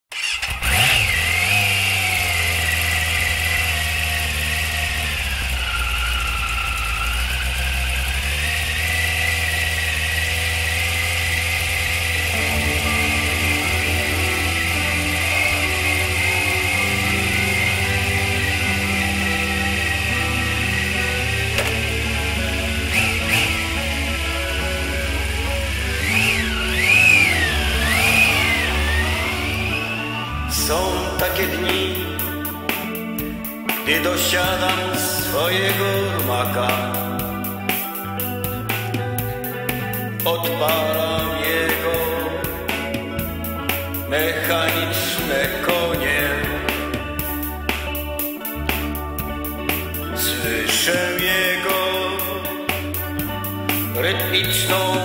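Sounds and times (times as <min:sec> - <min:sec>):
motorcycle engine running and revving: 0:00.0 - 0:55.0
music intro: 0:11.0 - 0:55.0.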